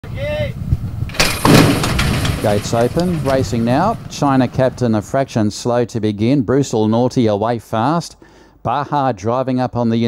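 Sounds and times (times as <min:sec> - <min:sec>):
horses clattering away: 0:01.1 - 0:04.9
starting stalls crashing open: 0:01.1 - 0:04.9.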